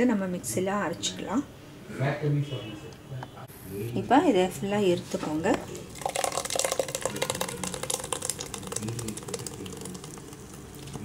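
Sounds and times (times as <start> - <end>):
spoon squelching pulp through strainer: 5.9 - 11.0.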